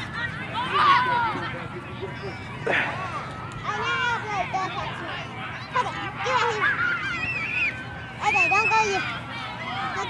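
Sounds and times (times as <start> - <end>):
people shouting: 0.2 - 1.5.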